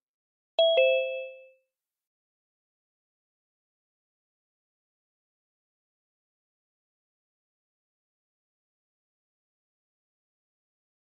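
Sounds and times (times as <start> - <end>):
two-note notification chime: 0.6 - 1.6.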